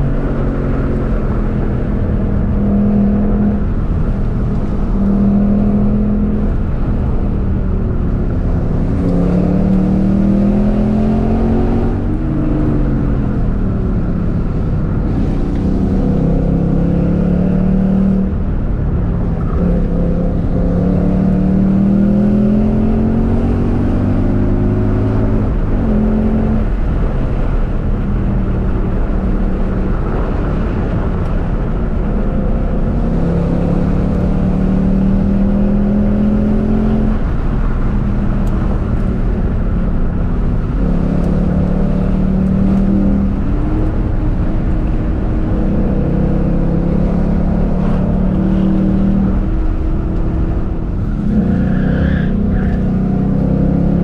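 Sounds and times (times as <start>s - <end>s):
car engine accelerating hard: 0.0s - 54.0s
road noise: 0.0s - 54.0s.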